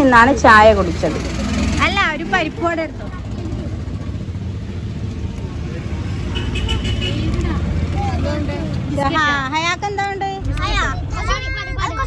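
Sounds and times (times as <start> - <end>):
vehicle engine running: 0.0 - 11.1
road traffic rumble: 0.0 - 12.0
voices talking: 0.0 - 12.0.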